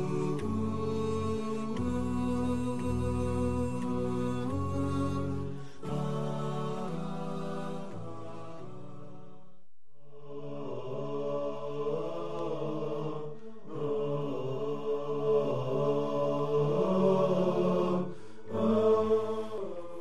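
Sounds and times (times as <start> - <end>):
voices chanting held notes: 0.0 - 9.4, 10.1 - 20.0.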